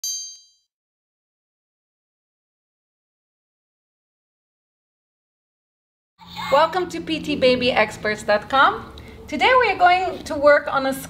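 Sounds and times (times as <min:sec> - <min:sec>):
high-pitched chime ding: 0:00.0 - 0:00.7.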